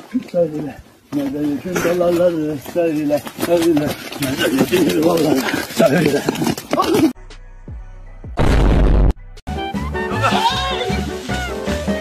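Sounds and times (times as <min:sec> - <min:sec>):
knocks and scuffs: 0:00.0 - 0:07.1
people shouting excitedly: 0:10.1 - 0:11.5.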